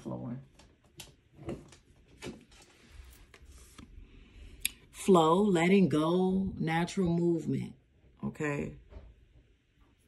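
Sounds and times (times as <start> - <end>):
soft card rustles: 1.7 - 4.0.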